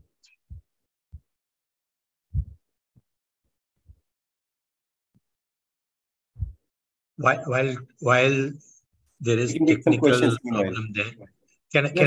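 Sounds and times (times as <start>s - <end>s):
muffled low thumps: 2.3s - 2.6s, 6.4s - 6.6s.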